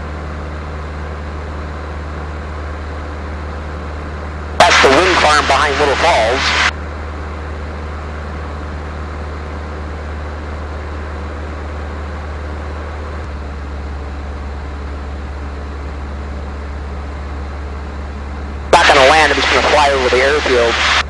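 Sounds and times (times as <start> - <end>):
airplane engine and propeller droning: 0.0 - 21.0.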